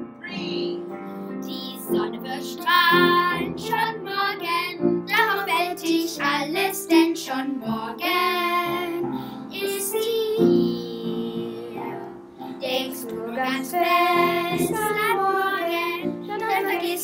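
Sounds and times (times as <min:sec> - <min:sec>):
instrumental accompaniment: 0:00.0 - 0:05.5
children singing: 0:01.5 - 0:17.0.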